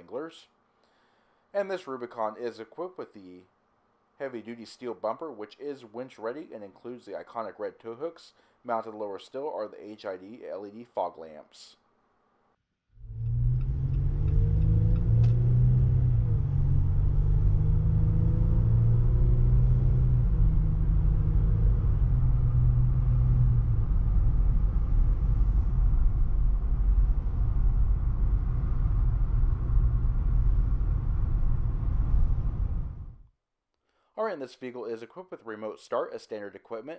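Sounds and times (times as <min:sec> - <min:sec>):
car engine humming: 0:13.0 - 0:33.1
road and tire rumble: 0:13.0 - 0:33.2.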